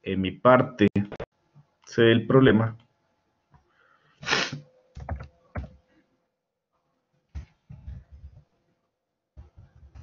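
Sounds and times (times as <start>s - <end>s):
person breathing out hissing: 4.0s - 4.6s.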